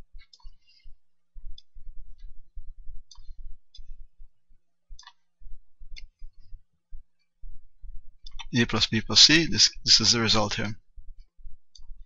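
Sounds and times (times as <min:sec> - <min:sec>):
computer mouse clicking: 0:05.0 - 0:05.2.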